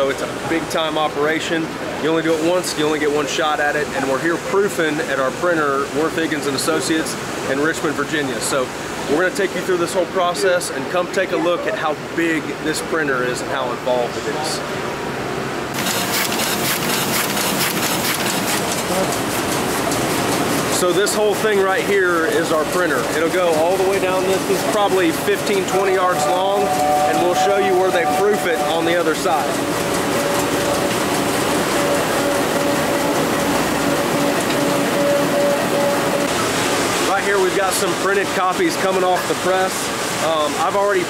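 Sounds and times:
printing press clattering: 15.8 - 41.0.

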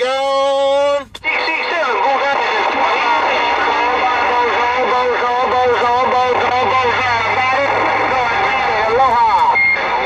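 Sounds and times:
garbled speech over cb radio: 0.0 - 10.0
radio static hiss: 0.6 - 10.0
high roger beep: 9.4 - 10.0.

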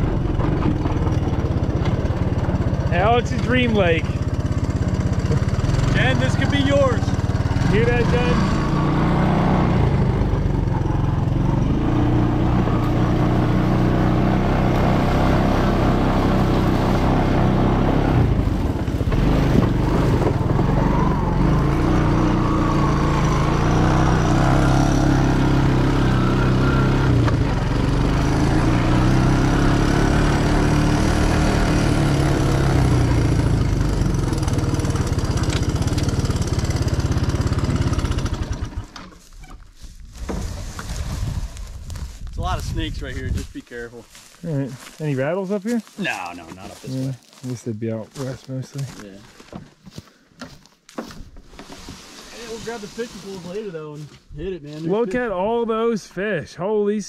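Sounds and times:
small atv engine revving: 0.0 - 39.3.

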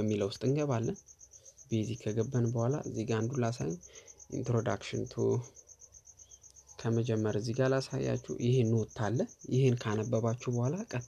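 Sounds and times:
man speaking: 0.0 - 1.0, 1.7 - 5.6, 6.8 - 11.0.

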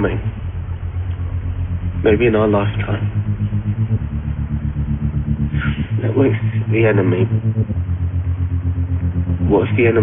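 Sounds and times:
pulsing low rumble and hum: 0.0 - 10.0.

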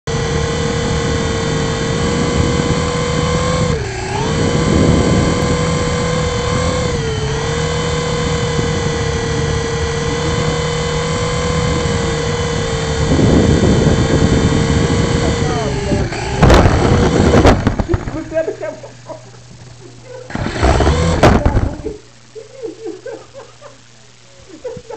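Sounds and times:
small rotor motors whining: 0.1 - 24.9.

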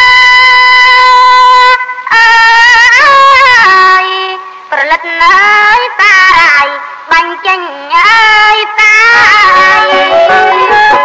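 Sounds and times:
woman singing: 0.0 - 11.0.

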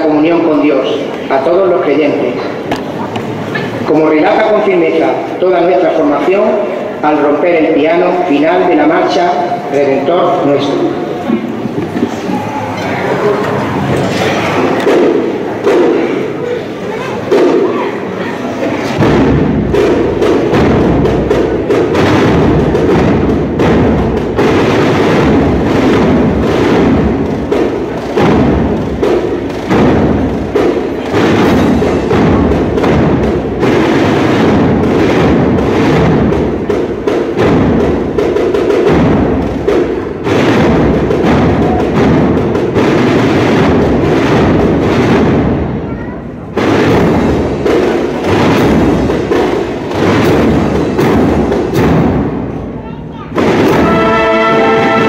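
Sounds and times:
brass band playing march: 19.0 - 45.4, 53.4 - 55.0
steady drum beat: 19.0 - 45.8, 46.5 - 52.8, 53.4 - 55.0.

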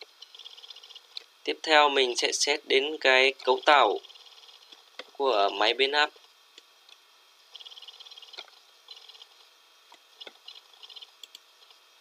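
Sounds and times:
computer mouse wheel ticking: 0.2 - 1.2, 3.4 - 4.7, 7.6 - 9.4, 10.2 - 11.8.

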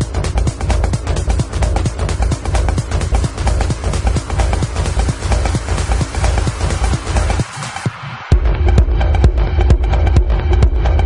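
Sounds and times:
minimal techno music: 0.0 - 11.0.

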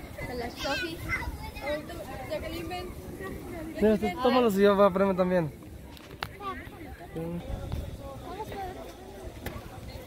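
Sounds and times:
child's high-pitched voice: 0.5 - 1.9
people talking: 5.9 - 10.0.

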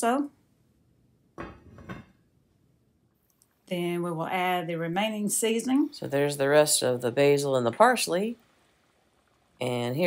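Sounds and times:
lid clanking on cast-iron pot: 1.4 - 2.2.

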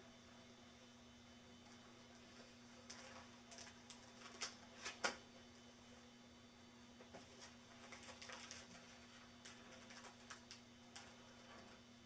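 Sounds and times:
album pages rustling: 7.1 - 11.8.

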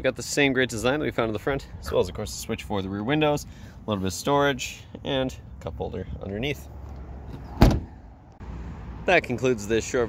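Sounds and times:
car door shutting thud: 7.4 - 8.0.

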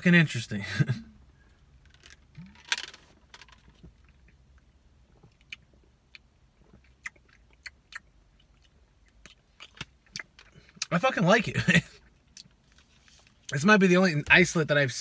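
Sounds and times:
lip smacks and mouth clicks: 5.2 - 10.9.

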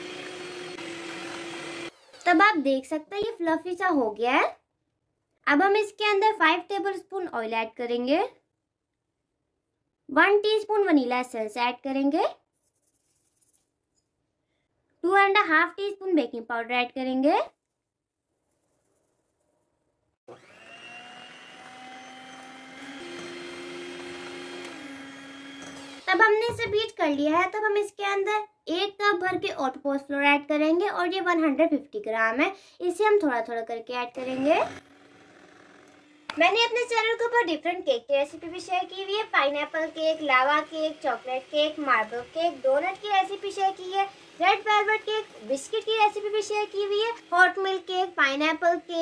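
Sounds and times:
electric hand mixer running: 0.0 - 2.4, 20.3 - 26.4, 34.1 - 37.5, 38.3 - 49.0.

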